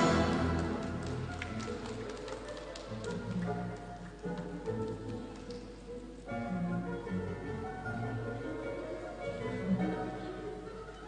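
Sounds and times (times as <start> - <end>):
orchestral music over speakers: 0.0 - 11.0.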